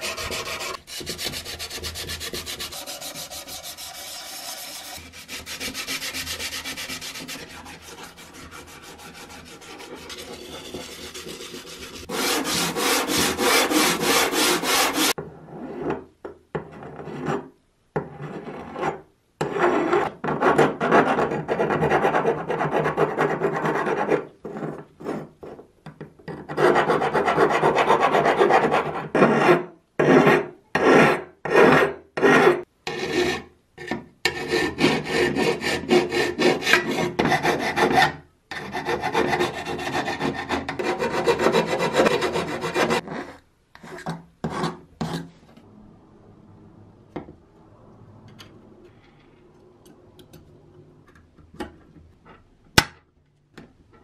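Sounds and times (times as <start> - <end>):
file rasping against metal: 0.0 - 15.2, 34.3 - 43.3
sandpaper rasping against metal: 0.0 - 15.2, 38.6 - 43.0.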